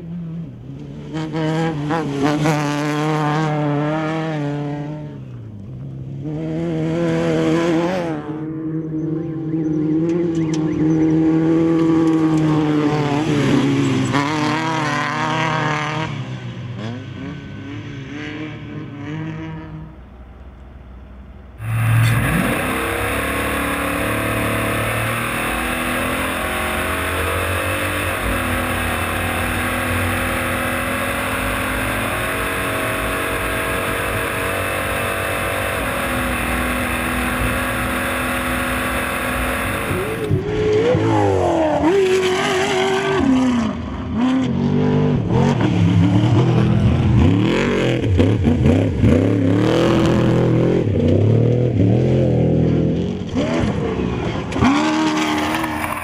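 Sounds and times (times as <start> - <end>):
road and wind noise: 0.0 - 56.0
engine drone inside cab: 21.6 - 40.4
truck engine revving: 21.6 - 56.0.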